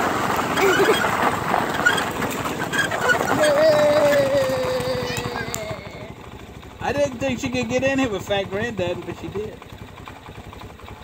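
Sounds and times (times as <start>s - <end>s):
go-kart engine whine: 0.0s - 11.0s.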